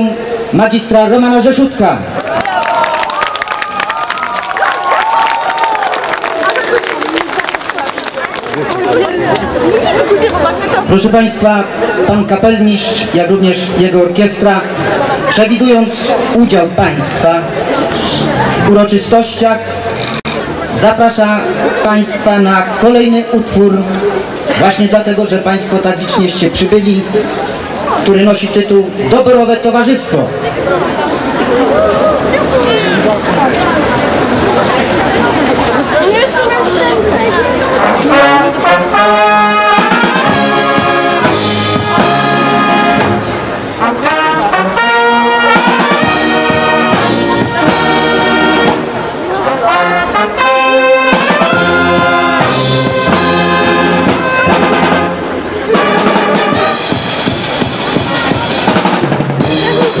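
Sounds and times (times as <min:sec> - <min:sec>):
voices: 0:05.9 - 0:56.8, 0:57.4 - 1:00.0
brass band playing: 0:09.6 - 0:23.0, 0:30.4 - 1:00.0.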